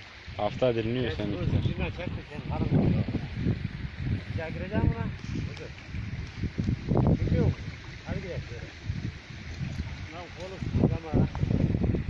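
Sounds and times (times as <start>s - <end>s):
wind rumble on microphone: 0.2s - 12.0s.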